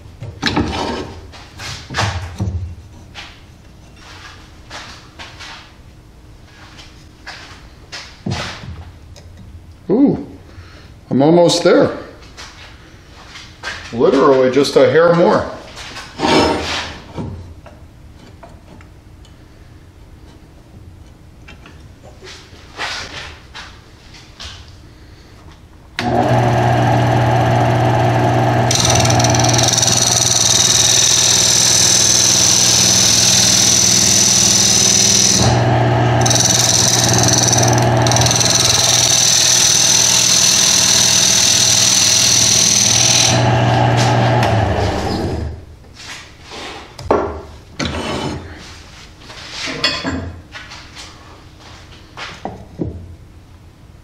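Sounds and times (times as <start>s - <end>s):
turning tool cutting wood: 26.0s - 45.6s
wood lathe motor humming: 26.0s - 45.6s.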